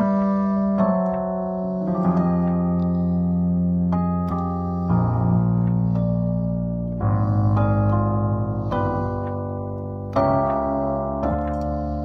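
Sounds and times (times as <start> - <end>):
electric piano chords: 0.0 - 12.0.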